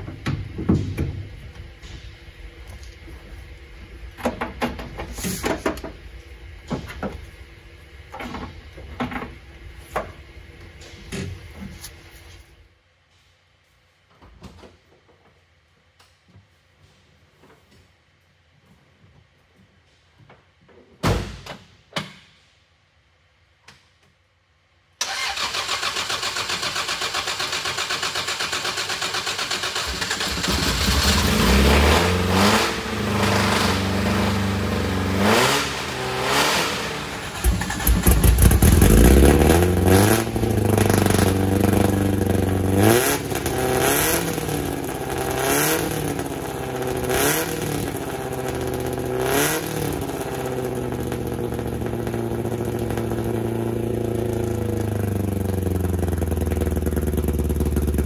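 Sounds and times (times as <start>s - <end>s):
car engine cranking and revving: 25.0s - 58.0s.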